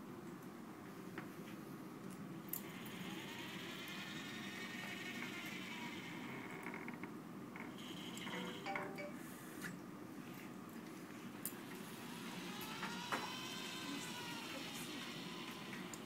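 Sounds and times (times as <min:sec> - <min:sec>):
robot arm motors whining: 0:02.6 - 0:06.6, 0:11.8 - 0:16.0.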